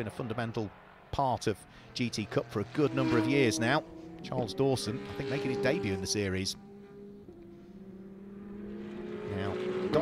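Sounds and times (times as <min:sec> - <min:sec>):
faint race car engines: 0:00.0 - 0:10.0.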